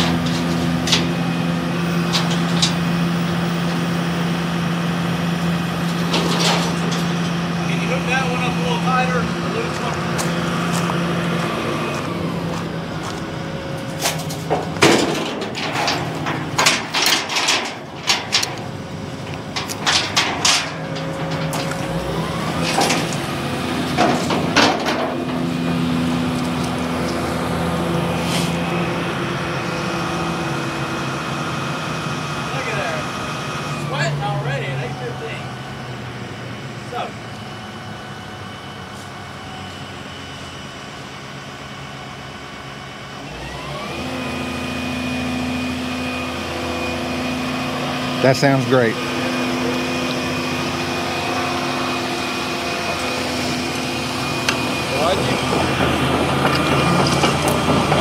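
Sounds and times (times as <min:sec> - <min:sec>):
diesel engine running: 0:00.0 - 0:58.0
sharp metal clanks and knocks: 0:05.9 - 0:07.4, 0:14.0 - 0:21.9, 0:23.9 - 0:25.4.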